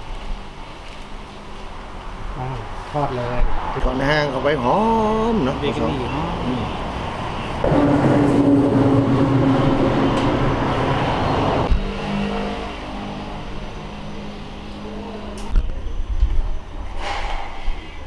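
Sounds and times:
engine running: 5.4 - 16.7
low rumbling: 5.9 - 18.0.

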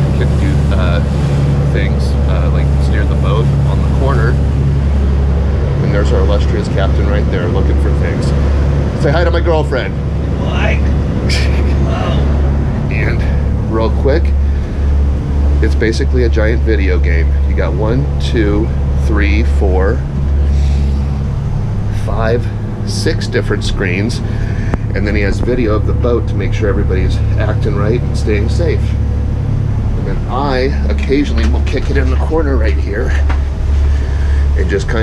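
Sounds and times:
boat engines droning: 0.0 - 35.0
indistinct voices: 0.0 - 35.0.

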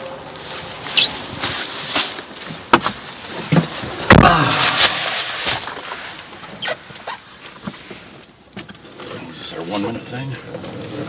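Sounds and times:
man sighing: 4.1 - 5.0.

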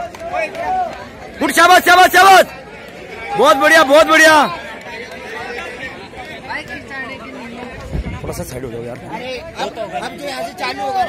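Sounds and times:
crowd of men chattering: 0.0 - 11.0.

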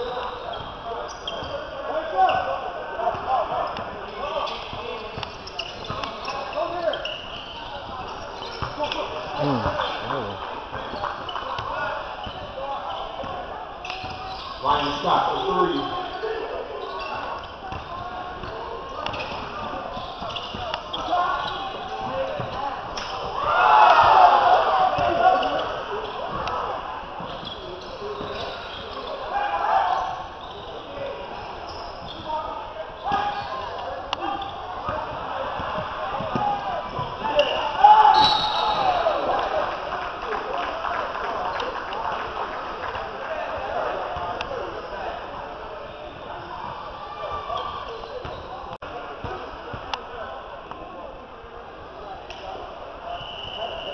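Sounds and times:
voices calling out: 0.0 - 40.0.

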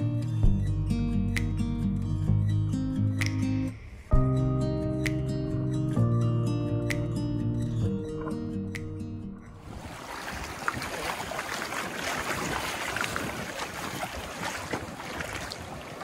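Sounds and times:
acoustic guitar music: 0.0 - 9.6
faint water splashes: 9.6 - 16.0
river rushing: 9.6 - 16.0.

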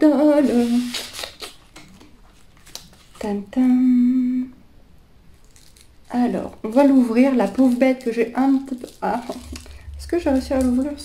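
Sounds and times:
packaging clicks and rustles: 0.8 - 3.2, 5.4 - 11.0
woman humming a steady note: 3.7 - 4.6.

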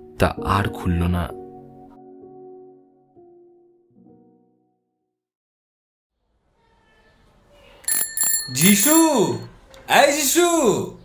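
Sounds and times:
bicycle bell ringing: 7.8 - 9.5.

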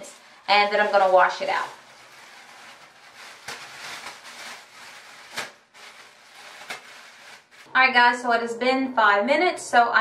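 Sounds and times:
plastic shower cap crinkling: 0.0 - 7.7.

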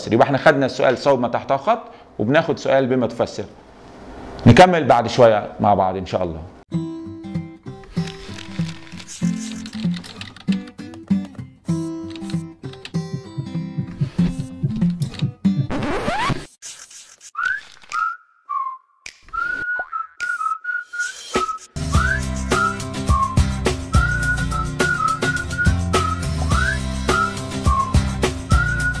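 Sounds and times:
whistled melody: 17.4 - 29.0
bass and drums: 21.8 - 29.0.

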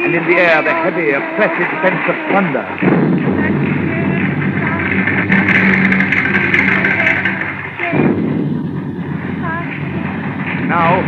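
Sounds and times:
rumbling storm: 2.8 - 11.0.

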